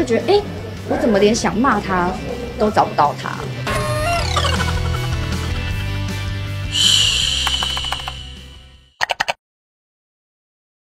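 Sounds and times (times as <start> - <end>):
background music: 0.0 - 8.8
high shimmering swish: 6.6 - 8.7.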